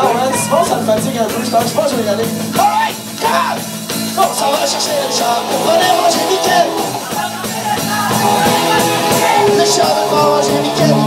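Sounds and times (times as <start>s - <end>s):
heavy metal band playing: 0.0s - 11.0s
melodic electric guitar line: 0.0s - 11.0s.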